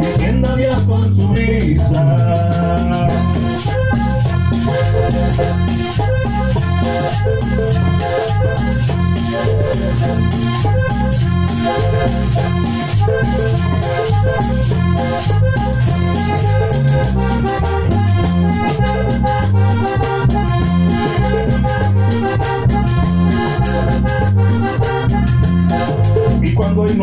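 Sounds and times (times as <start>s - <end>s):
bass line: 0.0s - 27.0s
button accordion melody: 0.0s - 27.0s.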